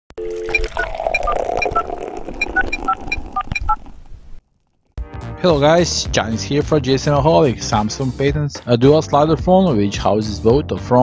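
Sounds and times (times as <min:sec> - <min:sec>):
short electronic beeps: 0:00.2 - 0:03.9.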